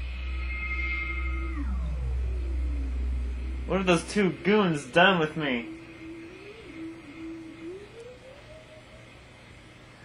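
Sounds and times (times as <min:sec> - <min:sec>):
electronic tone sliding downward: 0:00.0 - 0:09.7
steady low hum: 0:00.0 - 0:10.0.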